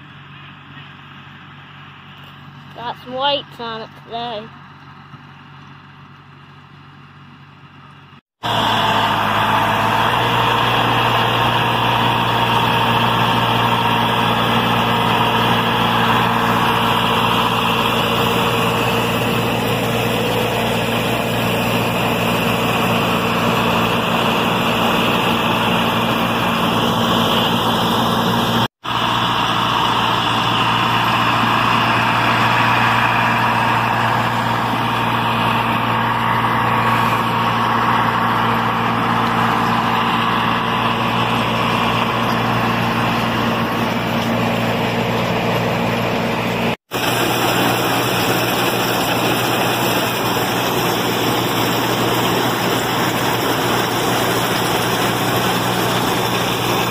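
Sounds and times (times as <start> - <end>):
tractor engine under load: 0.0 - 56.9
corn picker mechanical clatter: 4.6 - 56.9.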